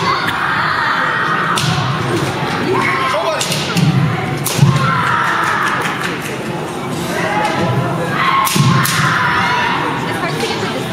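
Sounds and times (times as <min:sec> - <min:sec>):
echoing hall chatter: 0:00.0 - 0:10.9.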